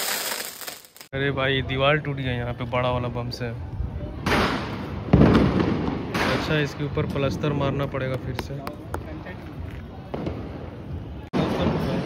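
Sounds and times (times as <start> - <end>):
firecrackers popping and banging: 0.0 - 1.1, 4.2 - 9.2.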